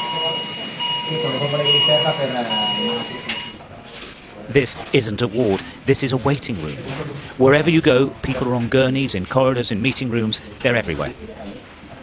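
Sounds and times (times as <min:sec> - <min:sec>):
monitor alarm long beeps: 0:00.0 - 0:03.6
people talking: 0:00.0 - 0:12.0.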